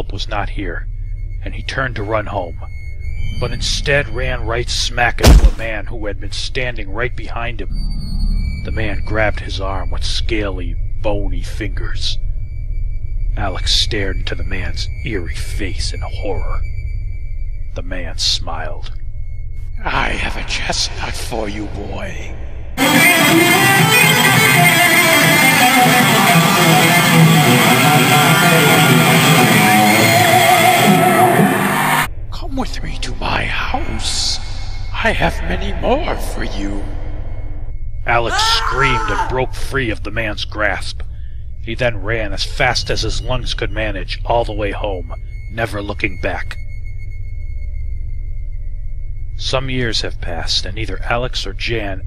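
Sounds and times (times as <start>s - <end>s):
deep steady drone: 0.0s - 52.0s
thin high tone: 19.8s - 31.5s, 32.1s - 39.7s
rock music with electric guitar: 22.8s - 32.1s.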